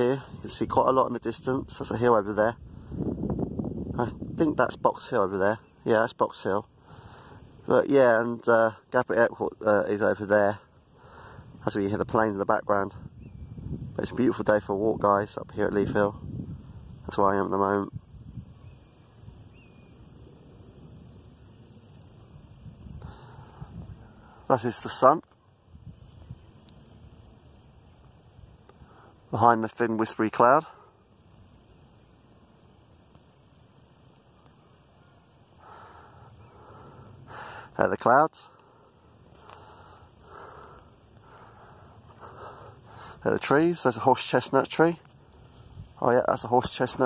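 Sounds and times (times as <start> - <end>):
wind buffeting microphone: 0.0 - 5.4, 11.2 - 25.0, 25.6 - 27.4
faint breathing: 2.6 - 3.3, 6.7 - 7.7, 10.5 - 11.6, 22.8 - 24.5, 28.7 - 29.3, 30.6 - 31.3, 35.4 - 37.8, 38.4 - 43.4.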